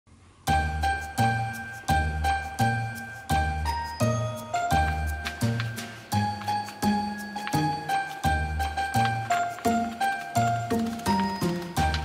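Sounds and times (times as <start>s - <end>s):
bell-like tinkling notes: 0.5s - 8.3s.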